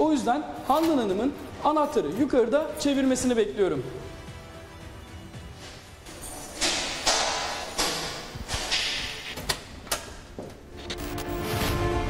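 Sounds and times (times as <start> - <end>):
keys rattling: 6.1 - 8.8
lock clicking: 6.5 - 10.4.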